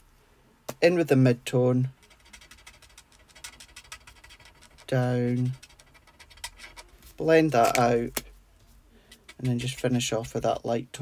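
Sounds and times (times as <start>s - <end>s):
marker scratching on card: 2.0s - 7.8s, 9.1s - 9.9s.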